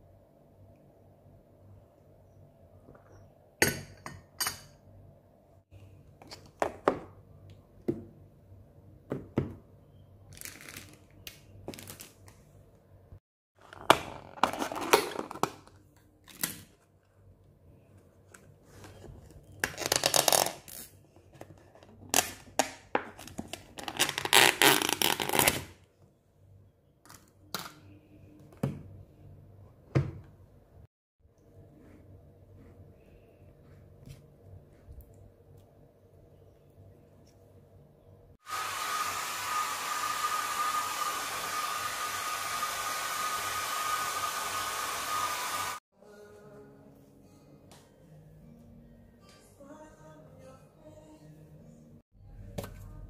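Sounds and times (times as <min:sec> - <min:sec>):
plastic lid crinkling and scraping: 0:13.6 - 0:15.8
hair dryer blowing: 0:38.4 - 0:45.8.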